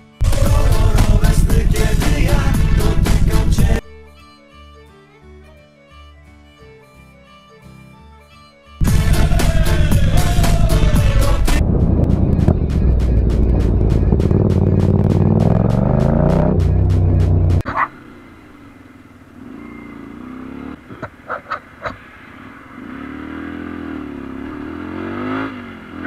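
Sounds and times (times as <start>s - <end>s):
loud fast beat music: 0.2s - 3.8s, 8.8s - 17.6s
motorcycle engine accelerating: 0.2s - 3.8s, 8.8s - 21.7s, 22.4s - 26.0s
motorcycle engine revving: 0.2s - 3.8s, 8.8s - 21.8s, 22.4s - 26.0s.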